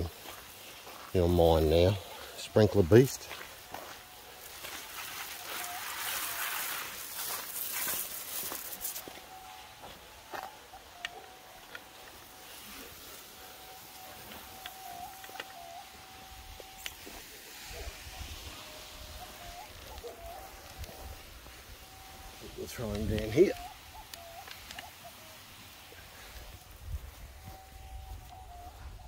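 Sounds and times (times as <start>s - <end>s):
sprinkler spraying water: 0.0s - 28.5s.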